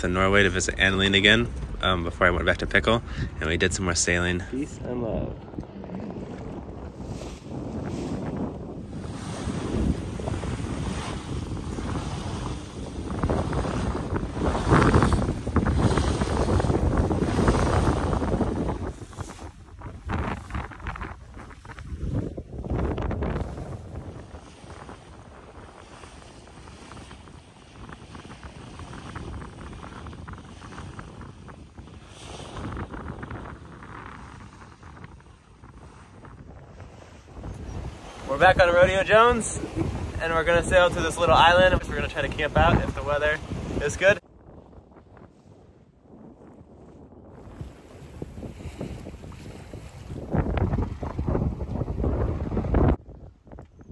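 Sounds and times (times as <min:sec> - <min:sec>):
water splashing along hull: 0:00.0 - 0:53.8
wind buffeting microphone: 0:00.0 - 0:53.9.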